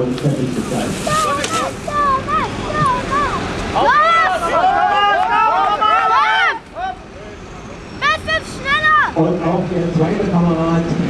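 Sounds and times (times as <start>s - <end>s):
man speaking: 0.0s - 1.9s
outdoor background noise: 0.0s - 11.0s.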